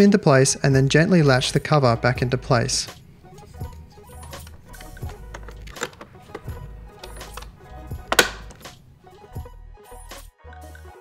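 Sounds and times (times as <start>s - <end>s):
quiet background music: 0.0s - 11.0s
plastic cover clicking: 3.6s - 9.4s
sharp latch snap: 4.2s - 9.4s.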